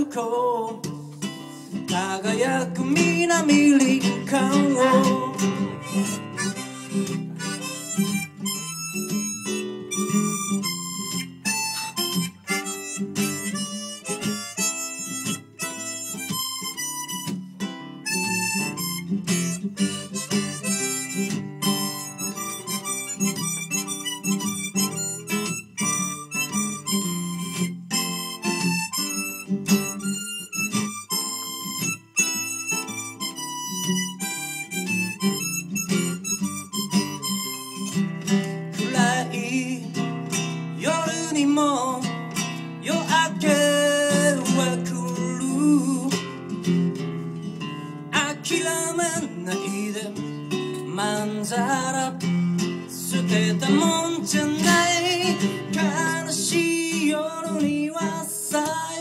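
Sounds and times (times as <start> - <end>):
acoustic guitar strumming: 0.0 - 59.0
harmonica playing: 1.3 - 59.0.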